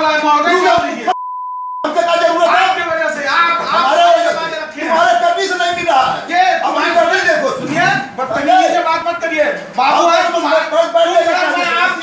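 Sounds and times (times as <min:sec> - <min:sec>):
men speaking: 0:00.0 - 0:01.2, 0:01.8 - 0:12.0
censor bleep: 0:01.1 - 0:01.9.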